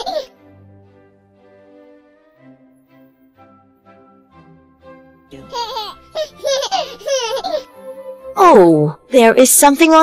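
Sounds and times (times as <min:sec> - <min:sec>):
child laughing: 0:00.0 - 0:00.3, 0:05.5 - 0:07.8
soft background music: 0:00.0 - 0:10.0.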